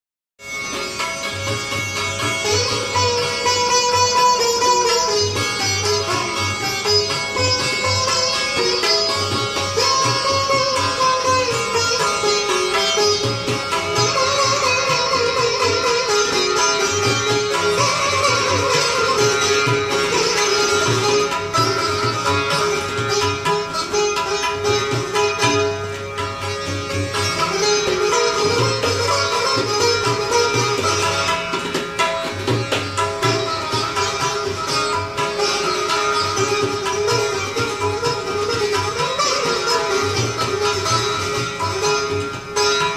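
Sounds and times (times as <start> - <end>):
low tabla: 0.4 - 42.9
sitar melody: 0.4 - 42.9.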